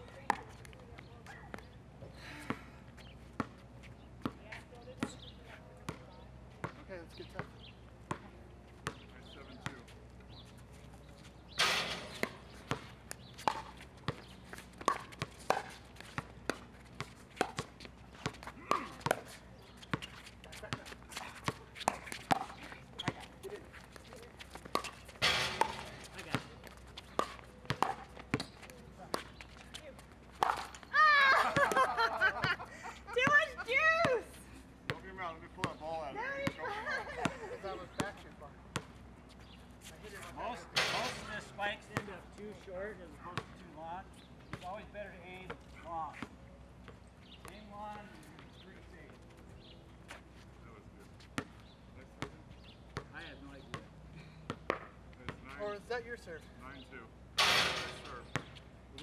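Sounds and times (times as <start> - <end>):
ball bouncing on court: 5.9 - 9.9, 11.6 - 34.2, 34.9 - 35.8, 36.4 - 39.0, 51.3 - 51.6, 52.2 - 52.4, 53.0 - 53.9, 54.5 - 55.5, 57.4 - 58.6.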